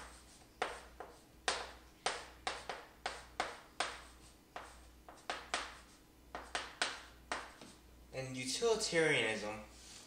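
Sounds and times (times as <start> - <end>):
chalk tapping on chalkboard: 0.0 - 7.8.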